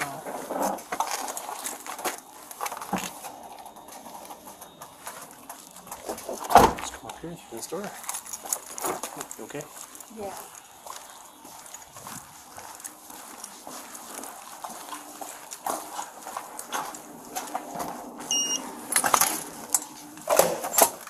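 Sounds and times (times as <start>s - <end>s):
footsteps on concrete: 0.0s - 7.0s, 7.8s - 20.3s
badge reader beep: 18.3s - 18.6s.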